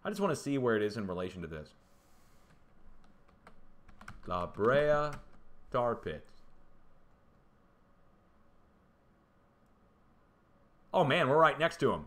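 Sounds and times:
low room hiss: 0.0s - 12.0s
faint keyboard keystrokes: 2.5s - 5.5s.

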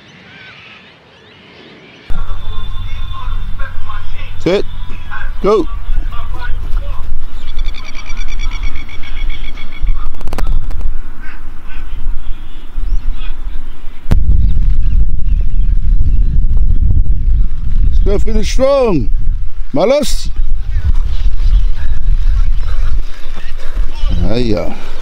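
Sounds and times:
wind buffeting microphone: 2.1s - 25.0s
bird chattering call: 7.3s - 10.1s.

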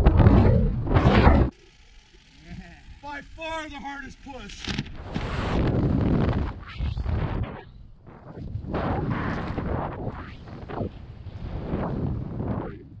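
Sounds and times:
wind rushing over microphone: 5.0s - 13.0s.

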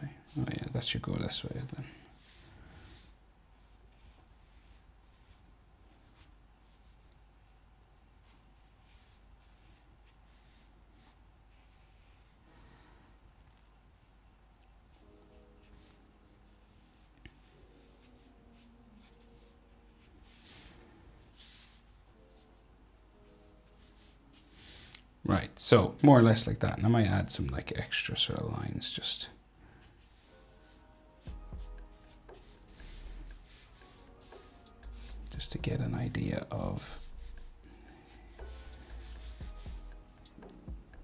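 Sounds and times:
marker scratching on paper: 8.6s - 12.3s, 30.0s - 35.2s, 37.0s - 37.6s, 38.3s - 40.0s.

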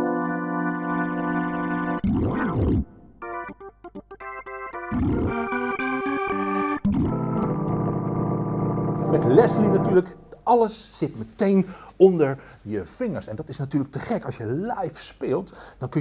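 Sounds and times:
distorted organ chords: 0.0s - 10.5s.

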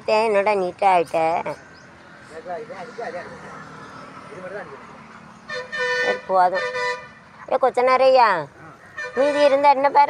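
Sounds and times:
vehicle horn steady note: 5.5s - 7.2s, 9.0s - 9.6s.

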